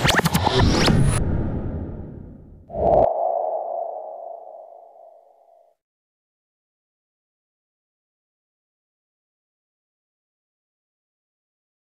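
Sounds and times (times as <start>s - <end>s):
ringing electronic tone: 2.7s - 5.4s.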